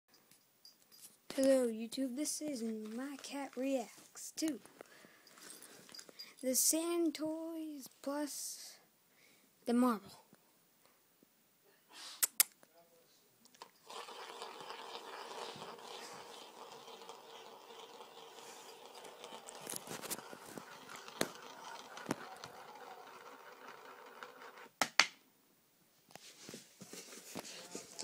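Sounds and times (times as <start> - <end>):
toy marble rolling rattle: 2.8 - 3.8, 13.6 - 24.8.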